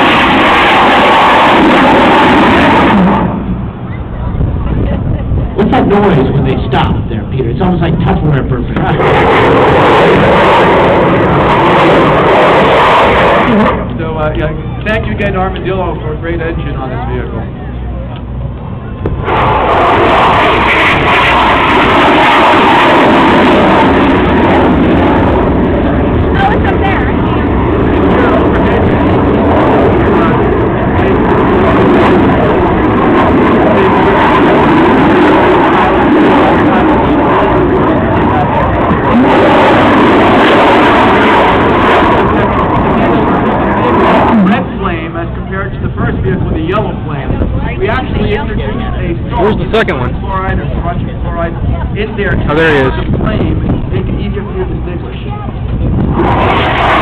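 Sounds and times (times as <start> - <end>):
rocket engine roaring: 0.0 - 57.0.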